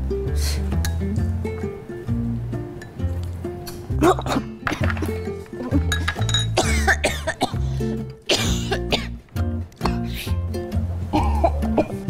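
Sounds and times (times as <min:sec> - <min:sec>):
comedic music with bouncing bass: 0:00.0 - 0:12.0
person coughing and choking: 0:04.0 - 0:07.6, 0:08.3 - 0:09.2, 0:11.1 - 0:12.0.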